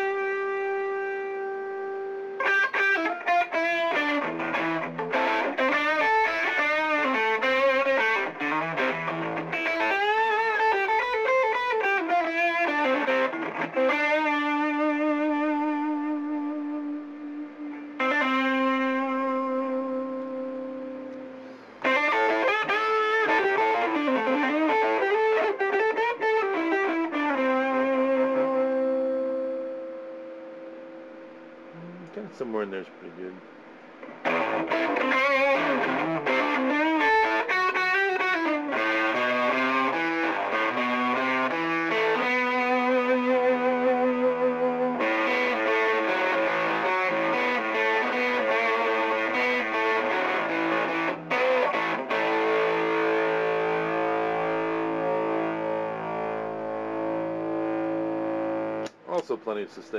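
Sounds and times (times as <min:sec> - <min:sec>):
distorted electric guitar: 0:00.0 - 0:32.3, 0:33.4 - 0:59.4.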